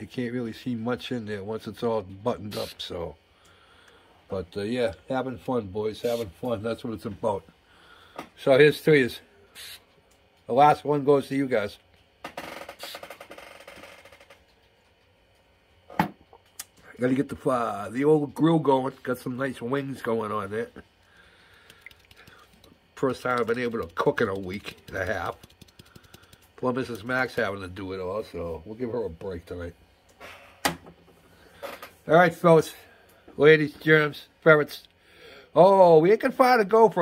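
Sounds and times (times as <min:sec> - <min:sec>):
rapid sharp clicks: 0:21.4 - 0:27.5.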